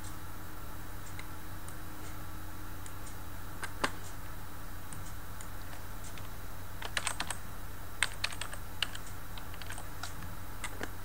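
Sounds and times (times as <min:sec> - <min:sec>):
steady low hum: 0:00.0 - 0:11.0
computer keyboard typing: 0:05.7 - 0:07.4, 0:08.0 - 0:11.0.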